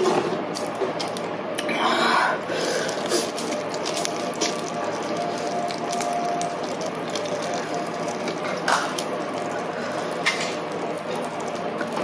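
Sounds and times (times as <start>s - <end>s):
chewing crunchy food: 2.5s - 12.0s.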